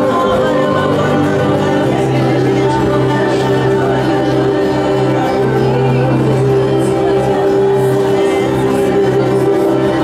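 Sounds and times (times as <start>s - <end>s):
acoustic guitars: 0.0s - 10.0s
people singing: 0.0s - 10.0s.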